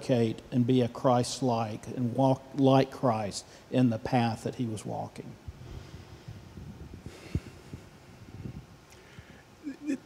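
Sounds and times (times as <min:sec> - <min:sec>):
faint rumble: 0:05.4 - 0:09.4.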